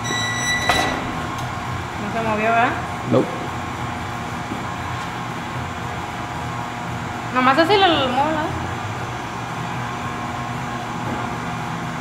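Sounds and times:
short high squeak: 0.0 - 1.2
steady mechanical hum: 0.0 - 12.0.

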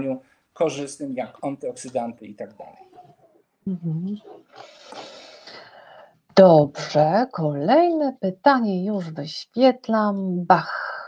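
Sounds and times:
person humming: 3.7 - 4.3.

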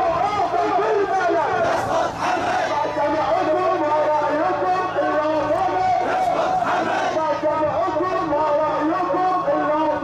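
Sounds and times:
crowd chanting slogans: 0.6 - 3.5, 5.5 - 7.4.

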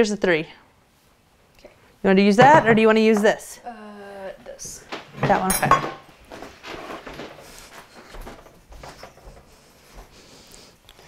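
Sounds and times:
spoon scraping and tapping: 2.4 - 3.3.

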